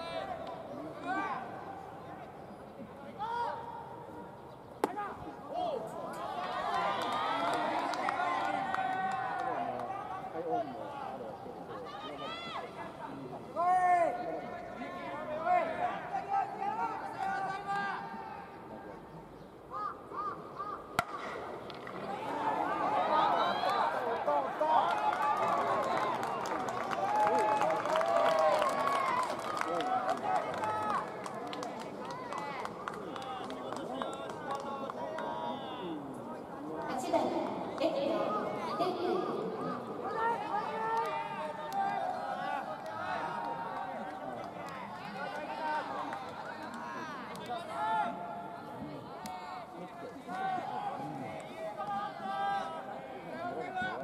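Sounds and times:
baseball smacking into mitt: 0:21.0 - 0:22.0.

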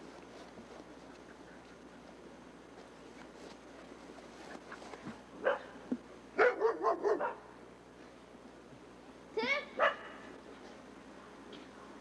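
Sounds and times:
dog barking: 0:05.4 - 0:05.8, 0:06.4 - 0:07.5, 0:09.8 - 0:10.2.

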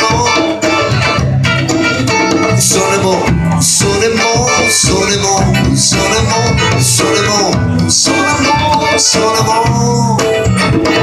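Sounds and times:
blues band playing: 0:00.0 - 0:11.0
electric guitar bending notes: 0:00.0 - 0:11.0
hand drum percussion: 0:00.0 - 0:11.0.

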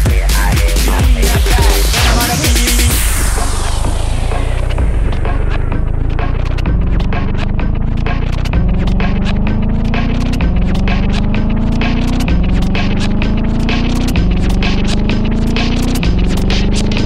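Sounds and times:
buzzing bass synth: 0:00.0 - 0:17.0
rising synth line: 0:00.8 - 0:17.0
clicky percussion: 0:04.7 - 0:17.0.

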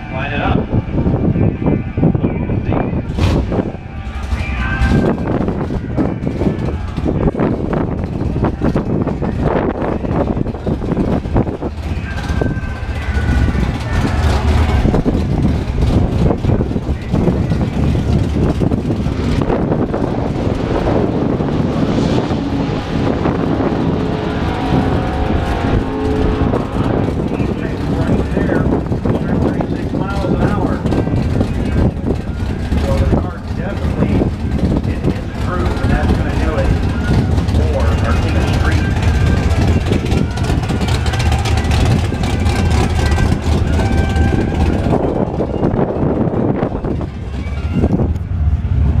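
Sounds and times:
people talking: 0:00.0 - 0:00.6, 0:26.8 - 0:40.2
car engine idling: 0:02.8 - 0:49.0.

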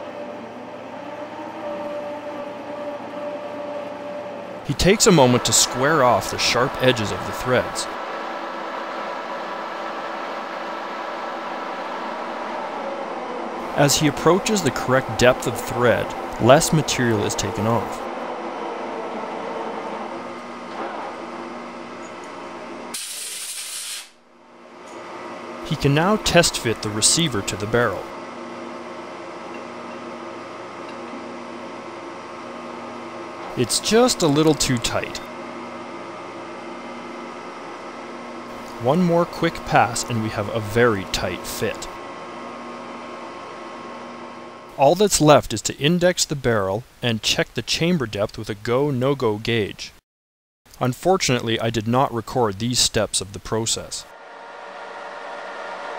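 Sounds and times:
metal lathe running: 0:00.0 - 0:23.0, 0:24.5 - 0:44.8, 0:54.1 - 0:55.9
steady hum: 0:00.0 - 0:23.4, 0:24.2 - 0:47.4, 0:52.4 - 0:55.9
man speaking: 0:04.6 - 0:08.0, 0:13.7 - 0:18.0, 0:25.6 - 0:28.1, 0:33.5 - 0:35.3, 0:38.8 - 0:41.9, 0:44.8 - 0:49.9, 0:50.8 - 0:54.1
loud hiss: 0:22.9 - 0:24.2.

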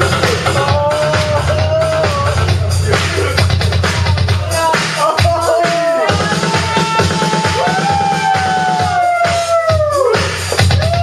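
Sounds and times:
kick drum beat: 0:00.0 - 0:11.0.

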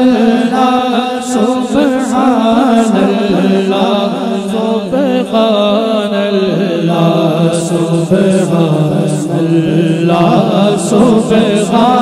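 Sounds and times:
hummed vocal drone: 0:00.0 - 0:12.0
man singing solo: 0:00.0 - 0:12.0.

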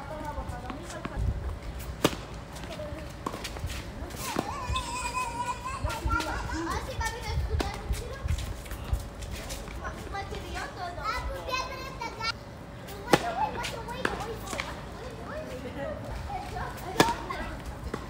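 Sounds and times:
tennis balls struck by rackets: 0:01.8 - 0:04.6, 0:13.0 - 0:14.8, 0:16.8 - 0:18.0
children calling out: 0:04.2 - 0:07.2
tennis balls bouncing on hard court: 0:16.7 - 0:18.0.

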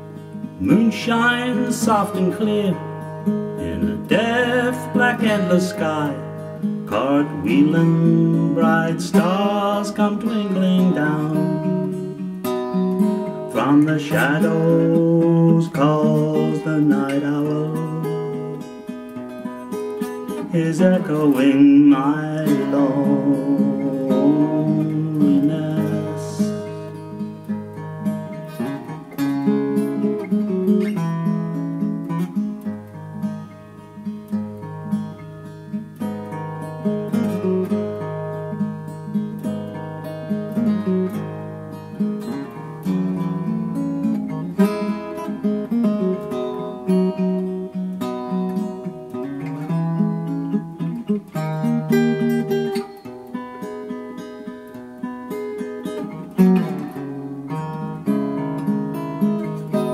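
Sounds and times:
fingerpicked acoustic guitar: 0:00.0 - 0:59.9.

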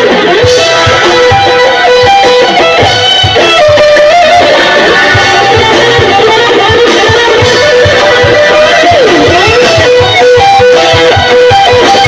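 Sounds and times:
electric guitars: 0:00.0 - 0:12.0
steady drum beat: 0:00.0 - 0:12.0.

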